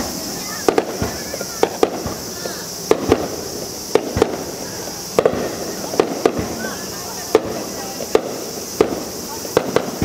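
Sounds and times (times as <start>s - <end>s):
fireworks low boom: 0.0s - 10.0s
fireworks sharp cracks: 0.0s - 10.0s.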